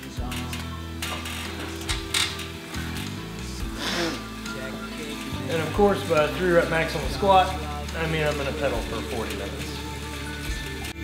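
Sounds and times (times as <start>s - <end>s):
exercise bike flywheel whirring: 0.0s - 11.0s.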